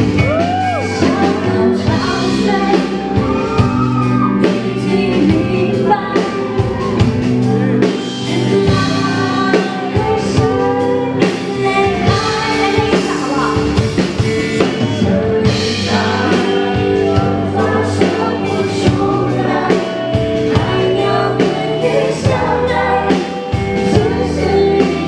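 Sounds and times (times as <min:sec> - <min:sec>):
band playing chords: 0:00.0 - 0:25.0
woman singing into microphone: 0:00.4 - 0:03.6, 0:04.2 - 0:07.1, 0:08.0 - 0:13.8, 0:14.9 - 0:25.0.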